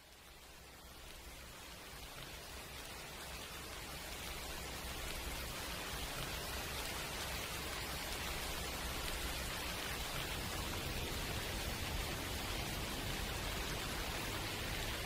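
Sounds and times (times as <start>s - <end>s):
steady rain falling: 0.0s - 15.0s.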